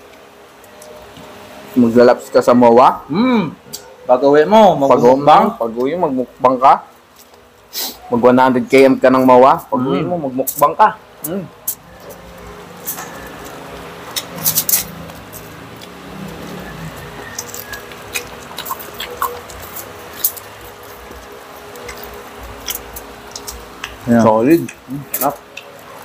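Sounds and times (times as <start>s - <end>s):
crispy pork crunching: 8.6s - 26.0s.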